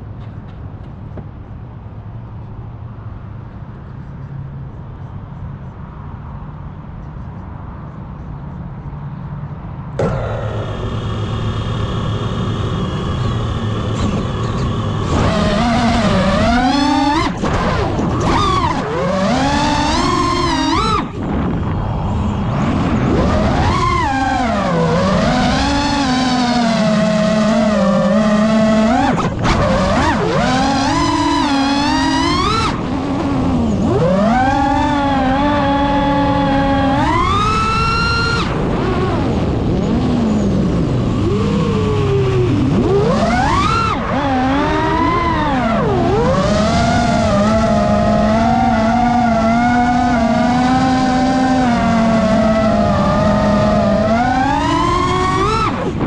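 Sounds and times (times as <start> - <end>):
drone motors whining: 9.9 - 56.0.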